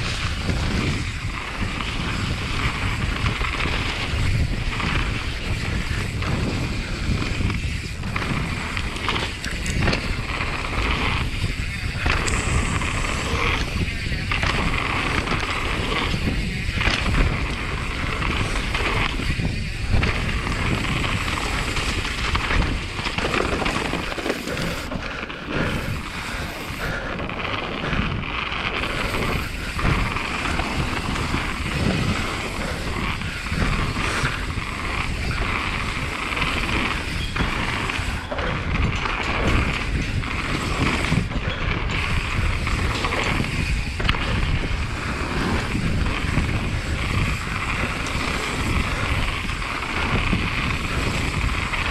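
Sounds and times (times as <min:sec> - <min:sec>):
bike tyres crunching over stones: 0:00.0 - 0:51.9
wind buffeting microphone: 0:00.0 - 0:51.9.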